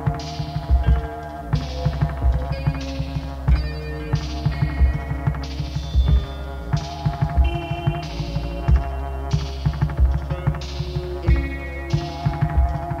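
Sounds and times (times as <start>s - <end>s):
electronic kick beat: 0.0s - 13.0s
sustained synth tones: 0.0s - 13.0s.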